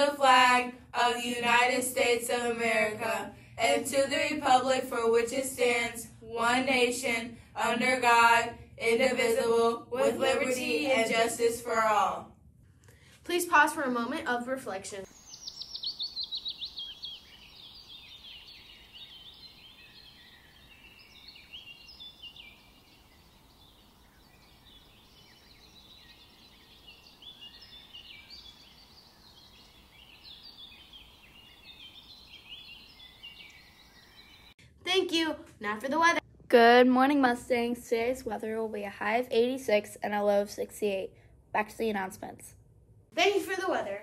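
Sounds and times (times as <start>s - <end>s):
songbirds singing and chirping: 15.0s - 34.6s.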